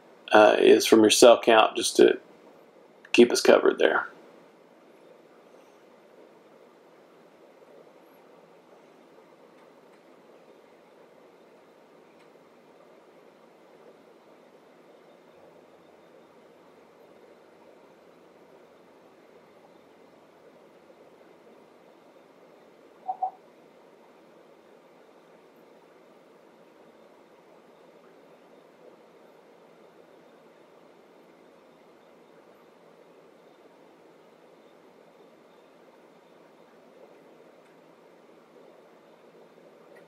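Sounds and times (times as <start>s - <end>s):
faint steady hiss: 0.0s - 40.0s
short pitched blips: 23.0s - 23.4s.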